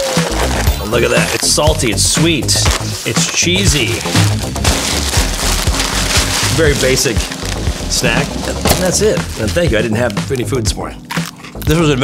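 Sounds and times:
background music: 0:00.0 - 0:12.0
snacks rattling in plastic bag: 0:02.7 - 0:10.5.

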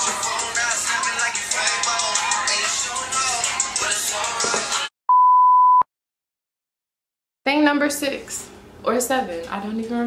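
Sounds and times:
test tone beep: 0:05.1 - 0:05.9.

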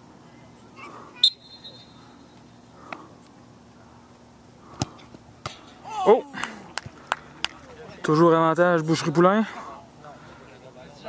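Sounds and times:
referee's whistle blast: 0:01.2 - 0:02.0
man exclaiming: 0:05.8 - 0:06.6.

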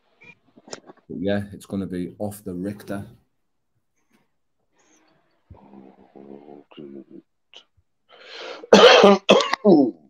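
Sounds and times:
breathy intake: 0:08.1 - 0:08.7
man coughing: 0:08.6 - 0:10.0.

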